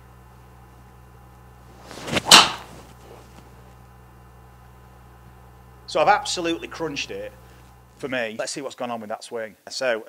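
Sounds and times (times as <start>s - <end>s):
golf club swish: 1.7s - 3.5s
golf ball crack: 1.8s - 3.6s.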